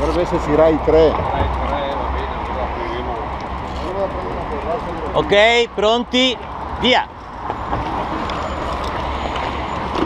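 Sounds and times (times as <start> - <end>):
group chatter: 0.0 - 5.3.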